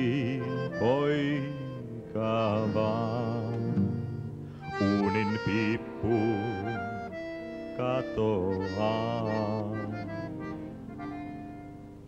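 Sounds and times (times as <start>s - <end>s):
acoustic guitar playing: 0.0s - 12.0s
bandoneon playing: 0.0s - 12.0s.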